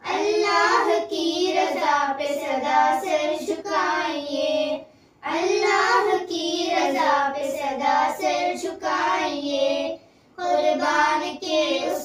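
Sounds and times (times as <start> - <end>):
girls singing unaccompanied: 0.0 - 12.0.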